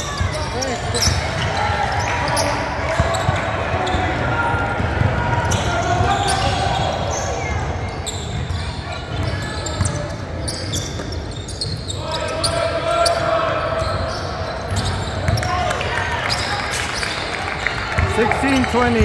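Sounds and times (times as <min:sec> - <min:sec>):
indistinct voices in echoing gym: 0:00.0 - 0:19.0.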